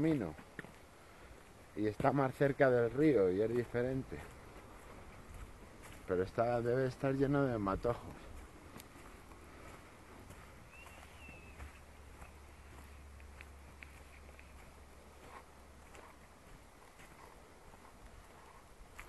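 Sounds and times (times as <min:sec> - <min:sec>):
footsteps on dry leaves: 0:03.0 - 0:19.0.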